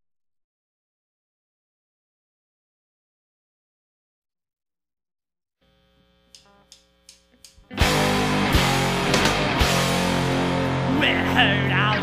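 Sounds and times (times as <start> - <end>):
faint amplifier hum: 5.6 - 12.0
drumstick count-in clicks: 6.3 - 7.7
punk rock band playing: 7.7 - 12.0.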